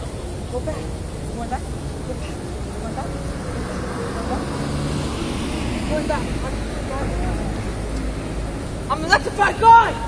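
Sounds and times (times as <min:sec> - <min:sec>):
car engines: 0:00.0 - 0:10.0
tyres on road: 0:00.0 - 0:10.0.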